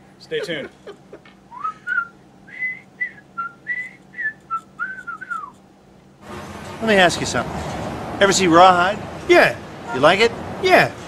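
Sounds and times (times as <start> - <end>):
person whistling a tune: 1.5 - 5.6.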